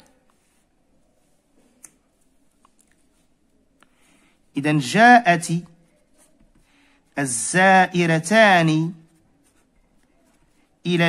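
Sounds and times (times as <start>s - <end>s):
marker scratching on paper: 0.3s - 1.4s, 4.7s - 11.0s
man speaking: 4.5s - 5.8s, 7.2s - 9.1s.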